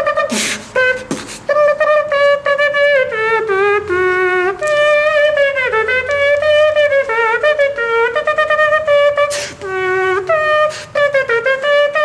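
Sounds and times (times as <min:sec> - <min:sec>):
beatboxer making horn-like melody: 0:00.0 - 0:12.0
short sharp mouth hisses: 0:00.3 - 0:01.5, 0:09.3 - 0:09.6.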